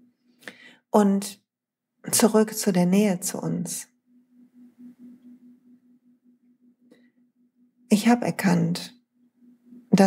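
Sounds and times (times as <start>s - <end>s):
faint low hum: 2.1s - 10.0s.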